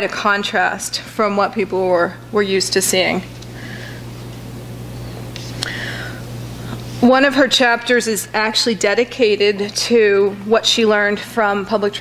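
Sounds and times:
low electrical hum: 0.0s - 12.0s
faint breath: 3.6s - 4.1s, 5.5s - 6.8s.

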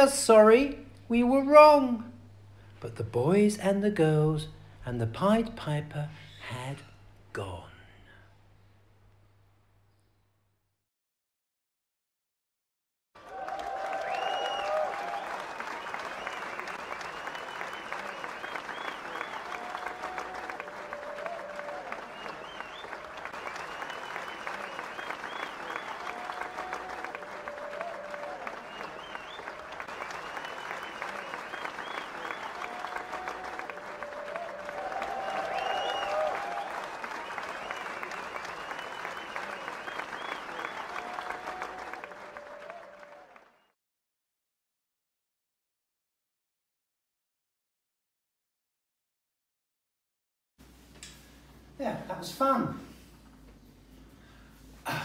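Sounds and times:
audience applause and cheering: 13.2s - 43.7s.

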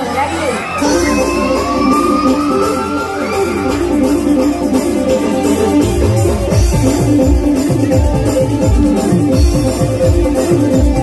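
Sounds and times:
repeating rhythmic backing: 0.6s - 11.0s
synthesizer lead note bending upward: 0.8s - 8.8s.

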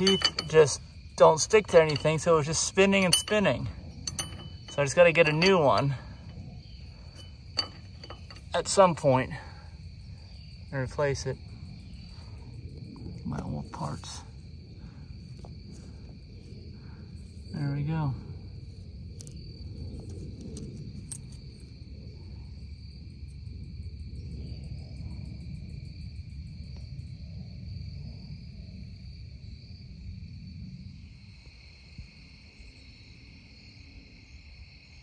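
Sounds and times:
insects chirring: 0.0s - 35.0s.

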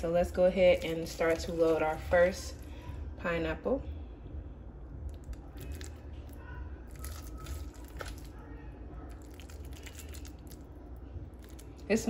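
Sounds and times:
wet squishing of rice: 5.1s - 12.0s.

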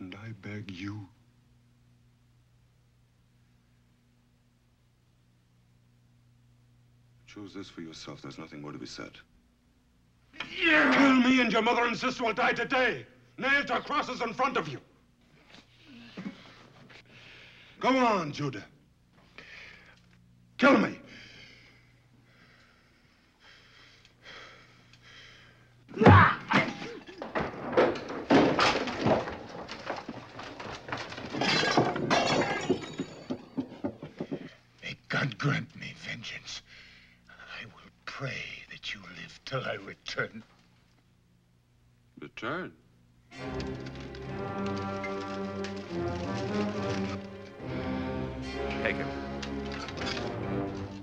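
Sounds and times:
low steady hum: 0.0s - 51.0s
man breathing tensely: 16.2s - 17.8s, 21.1s - 25.8s
orchestral music with brass chords: 43.3s - 51.0s.

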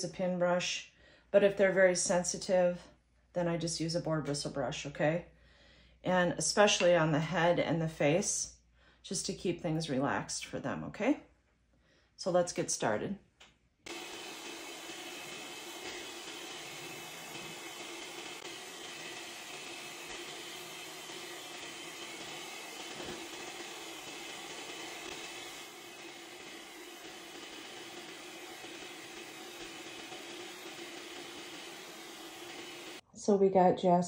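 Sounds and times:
pet dryer blowing air: 13.9s - 33.0s.

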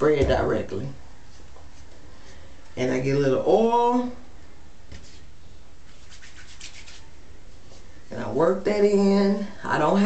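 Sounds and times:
hands rubbing hair: 5.0s - 7.9s.

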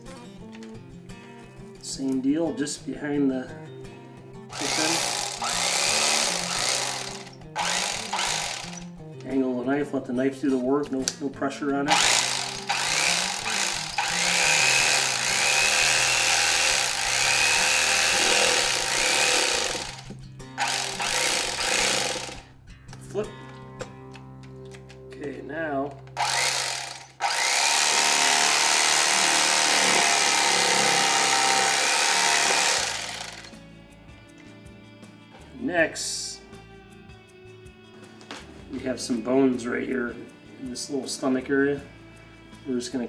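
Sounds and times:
electric fillet knife buzzing: 4.5s - 8.9s, 11.9s - 22.5s, 26.2s - 33.6s.

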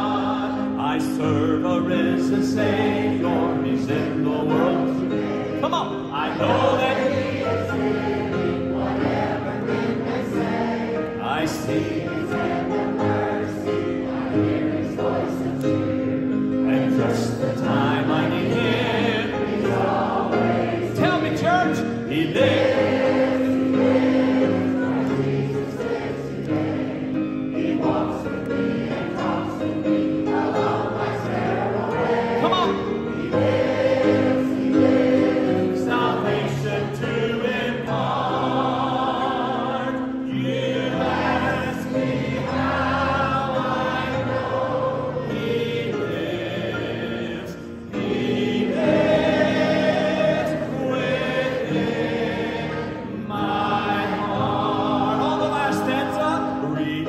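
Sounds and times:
crowd singing a hymn: 0.0s - 57.0s
piano and band: 0.0s - 57.0s
man singing lead: 0.8s - 7.2s.

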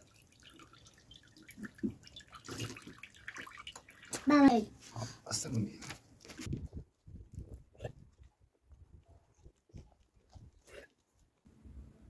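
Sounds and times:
juice trickling and dripping: 0.0s - 4.6s.

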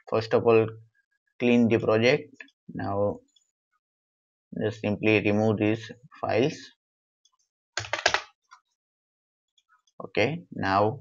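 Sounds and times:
keyboard keys clicking: 7.8s - 8.3s.

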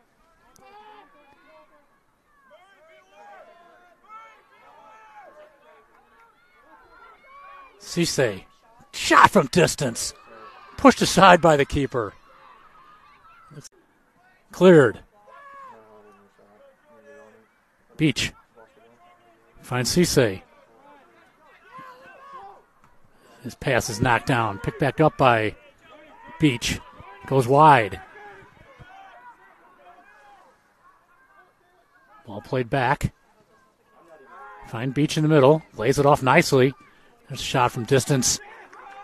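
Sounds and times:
distant shouting voices: 0.0s - 39.0s
open-air ambience: 0.0s - 39.0s
players calling out: 0.0s - 39.0s.

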